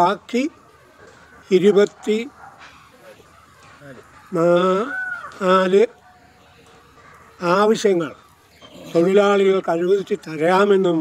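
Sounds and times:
elderly man speaking: 0.0s - 0.6s, 1.4s - 2.4s, 3.8s - 6.0s, 7.4s - 11.0s
faint high animal call: 4.3s - 5.6s.

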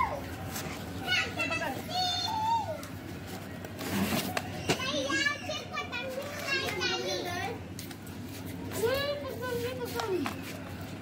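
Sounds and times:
children calling and talking: 0.0s - 11.0s.

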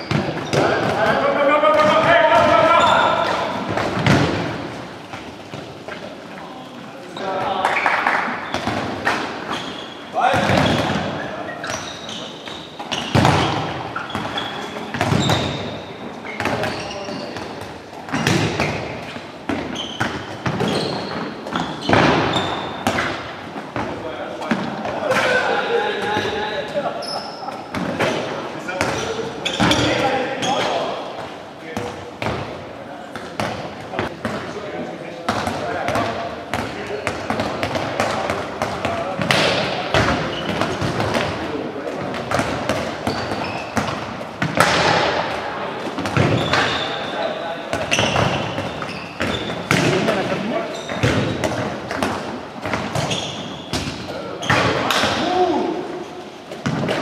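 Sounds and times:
balls bouncing on wooden floor: 0.0s - 6.2s, 7.3s - 25.4s, 35.3s - 47.0s, 47.7s - 55.4s
players shouting and chattering: 0.0s - 57.0s.

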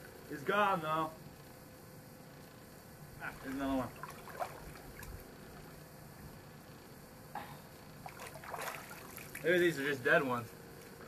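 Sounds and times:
small water splashes: 3.2s - 5.2s, 8.0s - 9.5s
water sloshing: 3.2s - 5.8s, 8.0s - 9.5s.

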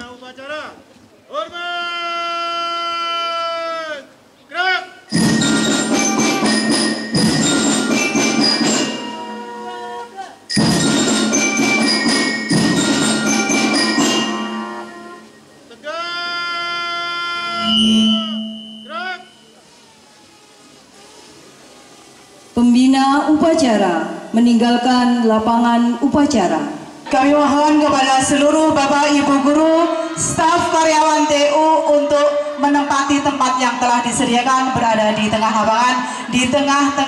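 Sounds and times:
bell-like struck percussion: 5.1s - 9.8s, 10.5s - 15.6s
person shouting a command: 15.8s - 19.3s.

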